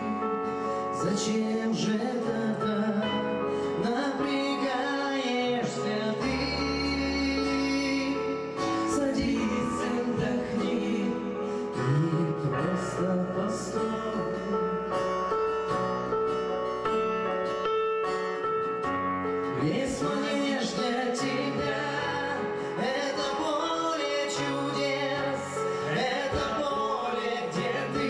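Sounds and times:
live band playing slow song: 0:00.0 - 0:28.0.

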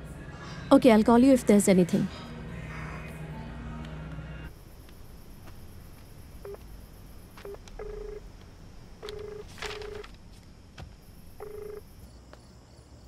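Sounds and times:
phone ringing tone beeps: 0:06.4 - 0:06.6, 0:07.4 - 0:08.2, 0:09.0 - 0:10.1, 0:11.4 - 0:11.9.

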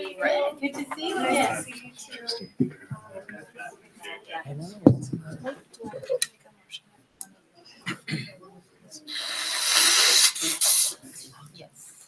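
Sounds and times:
loud harsh hiss: 0:09.1 - 0:11.1.

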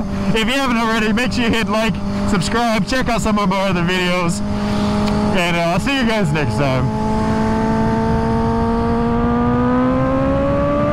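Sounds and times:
motorcycle engine accelerating: 0:00.0 - 0:10.9
road noise: 0:00.0 - 0:10.9
rushing wind: 0:00.0 - 0:10.9.

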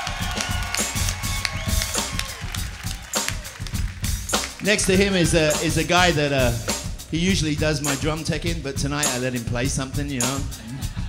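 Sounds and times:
bass: 0:00.0 - 0:11.0
drum kit beat: 0:00.0 - 0:11.0.

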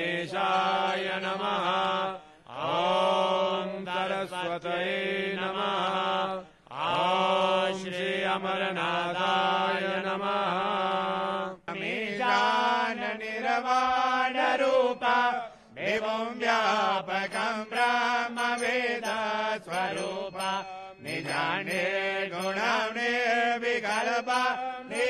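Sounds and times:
person chanting mantras: 0:00.0 - 0:25.0.

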